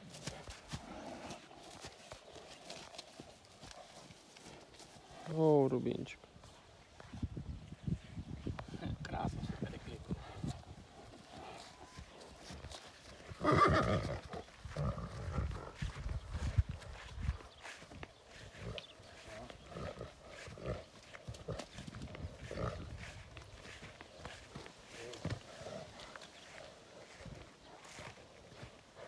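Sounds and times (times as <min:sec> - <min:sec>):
hooves thudding on grass: 0:00.0 - 0:29.0
horse neighing loudly: 0:13.4 - 0:14.2.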